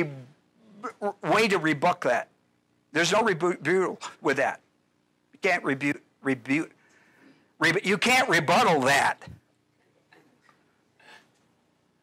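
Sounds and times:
man's voice: 7.6 - 9.4.

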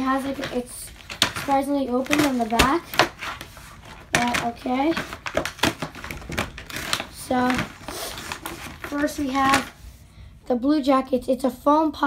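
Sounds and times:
paper packaging crinkling: 0.0 - 10.0.

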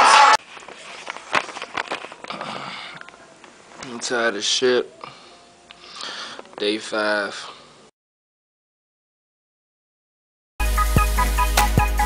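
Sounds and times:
rubbing and rustling: 0.4 - 2.6.

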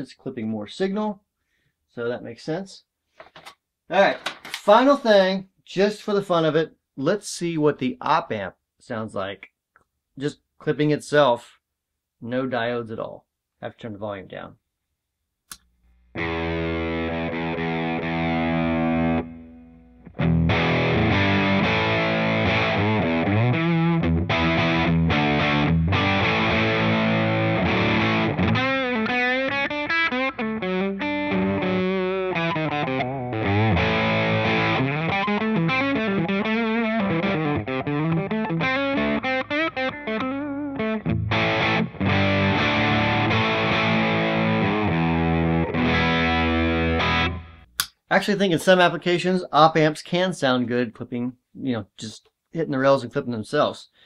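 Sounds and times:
distorted electric guitar: 15.9 - 47.8.

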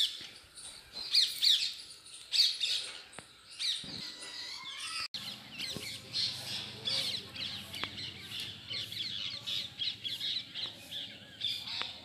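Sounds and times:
many birds chirping: 0.0 - 12.0.

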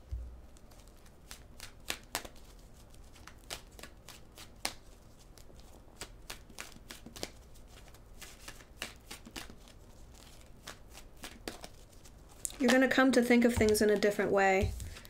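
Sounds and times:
cards being shuffled: 0.5 - 15.0.

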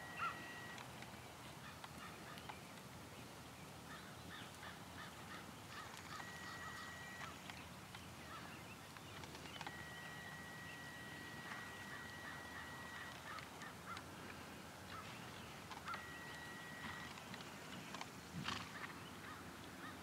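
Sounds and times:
short bird calls: 0.0 - 0.8, 3.9 - 17.2.

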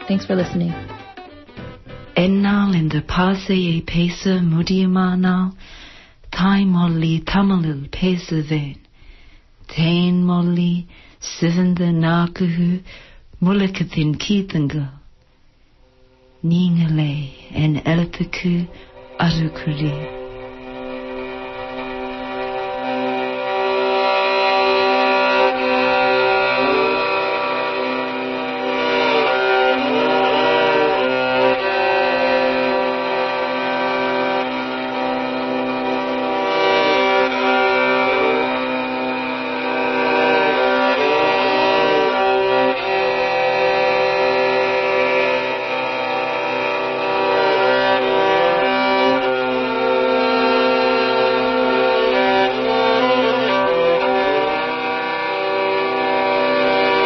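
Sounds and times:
violin melody with ornaments: 0.0 - 5.4, 16.2 - 57.0
steady sustained tones: 15.5 - 57.0.

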